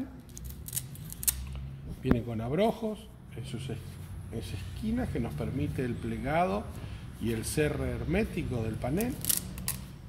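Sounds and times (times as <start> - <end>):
hook-and-loop fastener ripping: 0.3 - 1.6, 9.0 - 9.9.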